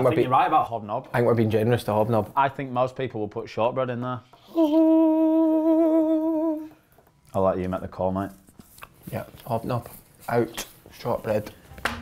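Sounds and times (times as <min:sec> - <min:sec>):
man humming held note: 0:04.5 - 0:06.7.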